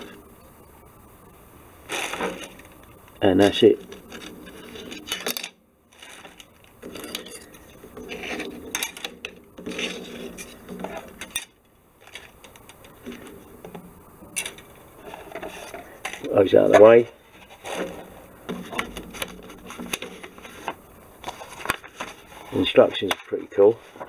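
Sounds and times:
plastic parts clicking and clattering: 1.9 - 24.0.

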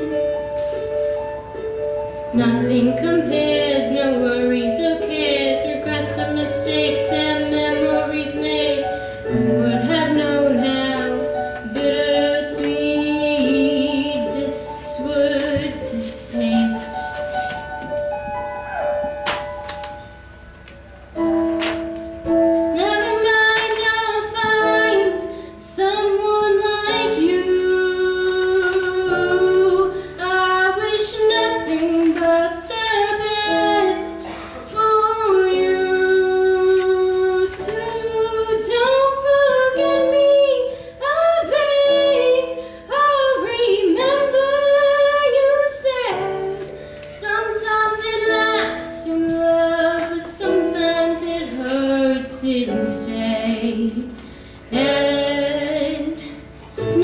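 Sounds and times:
digital piano chords: 0.0 - 57.0
electric keyboard: 0.0 - 57.0
woman singing: 2.3 - 17.2, 22.7 - 57.0.

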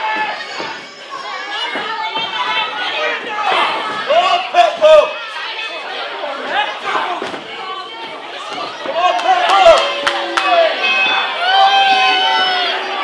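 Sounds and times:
crowd chattering and calling out: 0.0 - 13.0.

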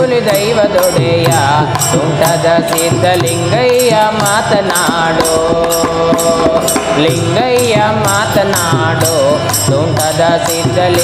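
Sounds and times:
tabla strokes: 0.0 - 11.0.

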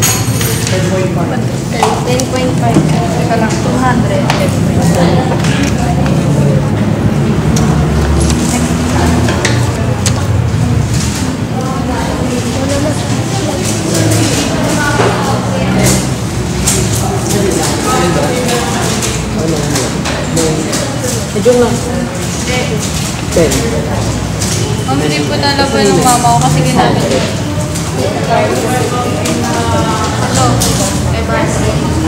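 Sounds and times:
students talking at once: 0.0 - 32.0.

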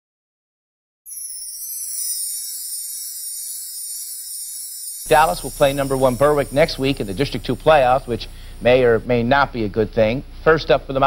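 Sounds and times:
high-pitched hiss: 1.1 - 10.2.

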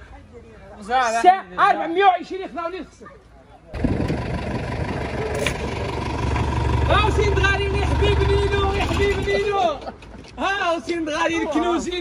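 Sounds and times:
truck engine running: 3.8 - 9.4.

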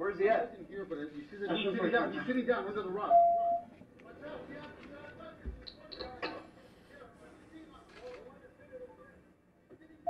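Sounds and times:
muffled talk over a speaker: 0.0 - 10.0.

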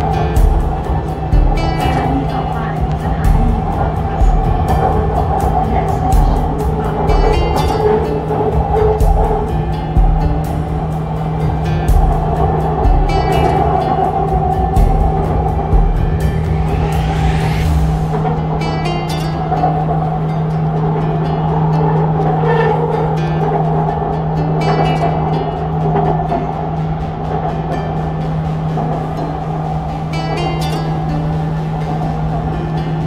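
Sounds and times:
background music: 0.0 - 33.0
metro train running: 0.0 - 33.0
electric motor whine rising: 8.0 - 18.8.

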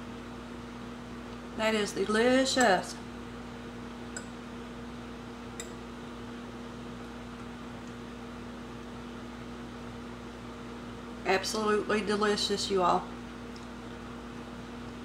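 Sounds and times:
appliance humming: 0.0 - 15.0.

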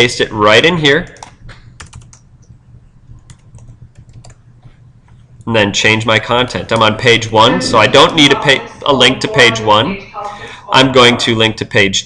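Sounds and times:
computer keyboard clicking: 1.1 - 2.2, 3.2 - 4.4.

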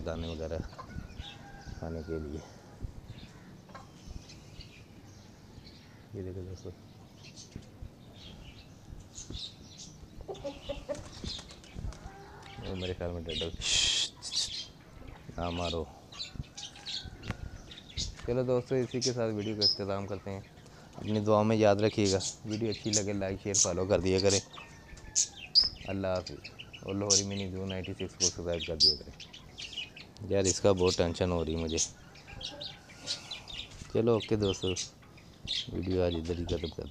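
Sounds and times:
small birds chirping: 0.0 - 36.9.

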